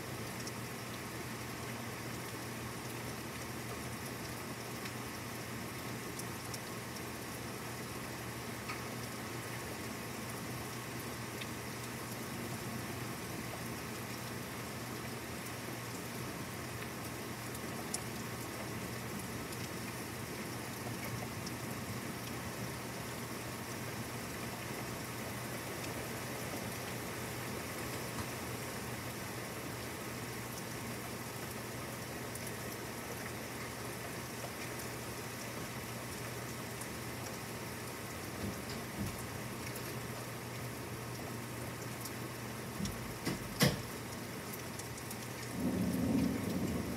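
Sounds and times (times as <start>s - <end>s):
steady rain falling: 0.0s - 46.9s
raindrop ticks: 0.3s - 0.6s, 2.2s - 5.1s, 5.8s - 7.1s, 8.6s - 9.6s, 11.4s - 12.2s, 15.0s - 22.5s, 32.3s - 46.9s.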